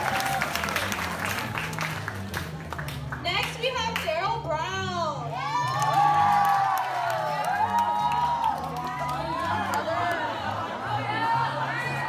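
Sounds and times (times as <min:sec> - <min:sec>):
audience clapping: 0:00.0 - 0:04.2, 0:05.6 - 0:10.4.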